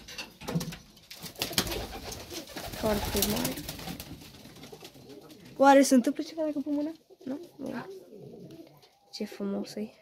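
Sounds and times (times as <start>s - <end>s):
pigeons cooing softly: 4.5s - 10.0s.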